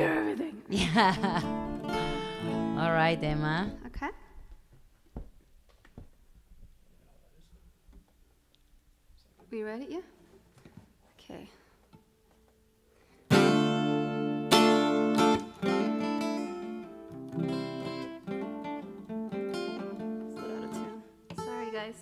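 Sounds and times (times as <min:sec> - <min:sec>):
guitar picked notes: 0:01.0 - 0:04.0, 0:13.3 - 0:22.0
acoustic guitar strumming: 0:01.1 - 0:04.0, 0:13.3 - 0:22.0.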